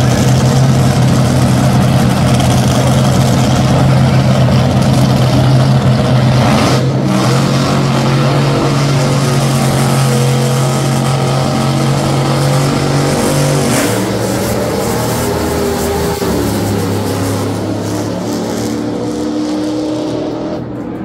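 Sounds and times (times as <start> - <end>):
dragster engines launching: 0.0 - 21.0.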